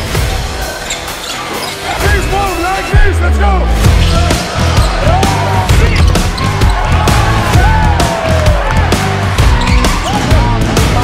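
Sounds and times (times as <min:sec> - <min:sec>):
sneakers squeaking: 0:00.7 - 0:02.0, 0:04.7 - 0:05.0, 0:09.6 - 0:10.2
music with heavy bass beat: 0:03.8 - 0:11.0.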